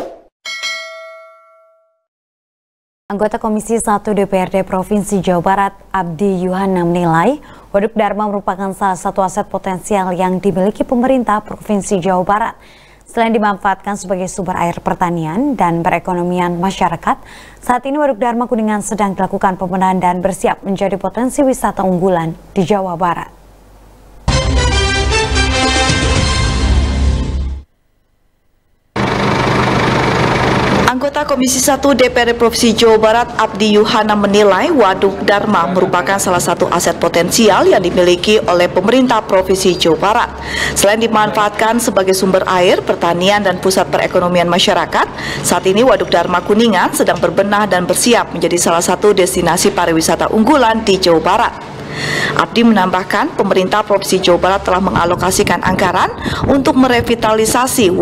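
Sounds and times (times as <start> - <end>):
bell-like ding: 0.4 - 2.1
engine running with low hum: 29.0 - 33.5.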